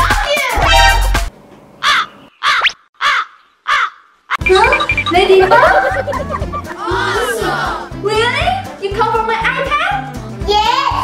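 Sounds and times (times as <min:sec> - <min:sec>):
crow cawing: 0:01.8 - 0:04.1.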